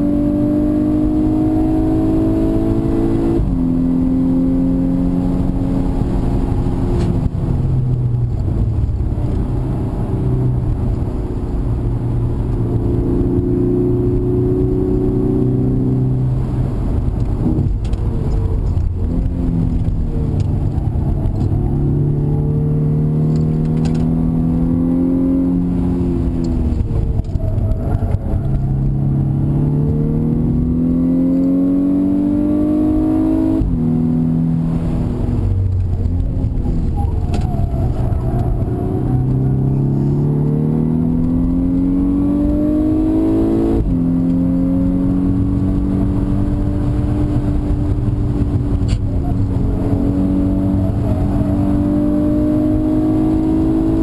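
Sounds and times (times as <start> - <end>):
car engine accelerating: 0.0 - 54.0
road and wind noise: 0.0 - 54.0.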